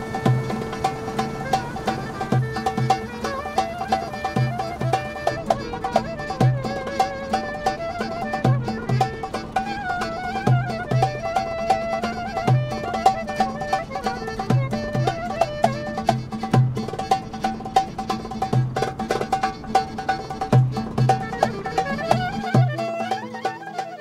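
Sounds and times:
crisp percussion: 0.0 - 24.0
folk melody on reed and strings: 0.0 - 24.0.

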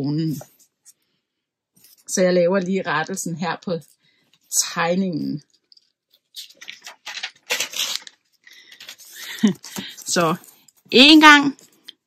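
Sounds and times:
paper notebook rustling: 6.2 - 10.9.

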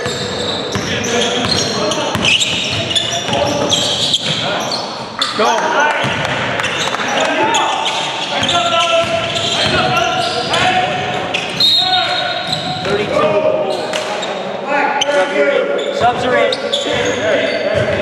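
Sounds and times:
players calling out: 0.0 - 18.0.

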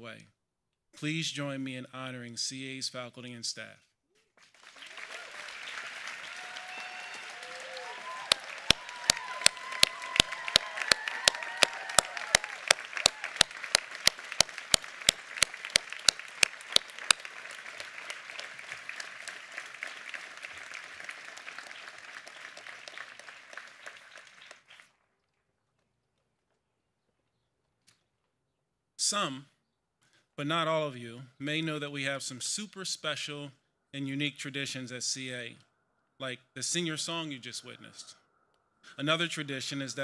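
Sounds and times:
close hand clapping: 4.4 - 24.9
crowd applauding: 4.4 - 25.0
people cheering: 4.6 - 24.6.

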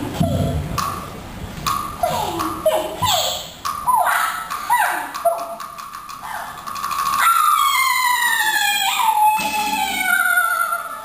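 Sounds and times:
sharp percussion clicks: 0.7 - 2.7, 3.5 - 7.9.

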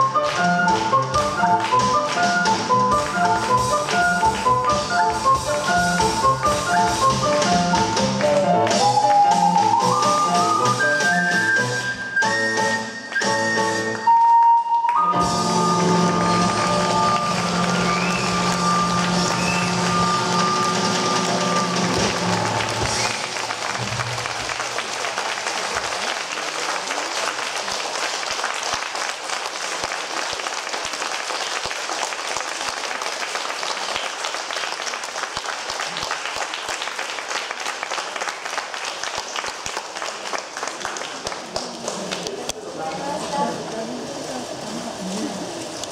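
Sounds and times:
audience applause: 0.0 - 11.8, 14.9 - 44.2
ocarina cello piano and drums: 0.0 - 24.3
ocarina high note: 8.3 - 23.3.

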